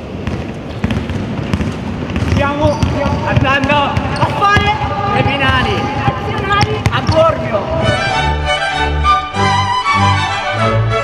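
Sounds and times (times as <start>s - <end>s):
basketball bouncing on hardwood: 0.0s - 8.0s.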